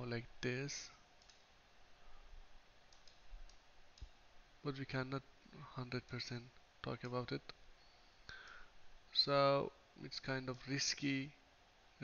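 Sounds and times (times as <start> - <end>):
computer mouse clicks: 1.2 - 1.5, 2.9 - 4.2, 8.3 - 8.6.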